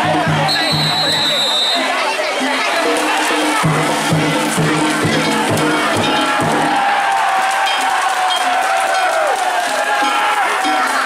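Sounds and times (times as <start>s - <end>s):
crowd noise: 0.0s - 11.0s
festival drums beating: 0.0s - 11.0s.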